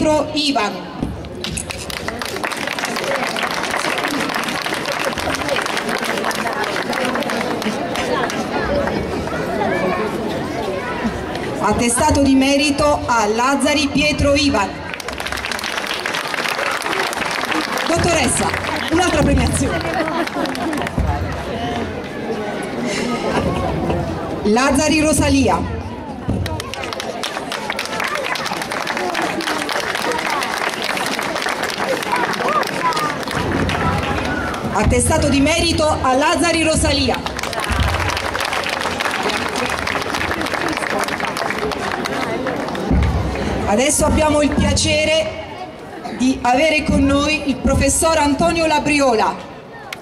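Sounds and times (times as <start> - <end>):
crowd chatter: 0.0 - 50.0
audience applauding: 1.4 - 9.0, 14.8 - 21.5, 26.4 - 34.8, 37.1 - 43.0.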